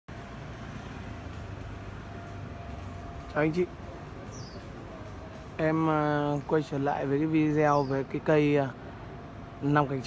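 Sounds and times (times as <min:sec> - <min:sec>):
faint constant high tone: 0:00.2 - 0:10.0.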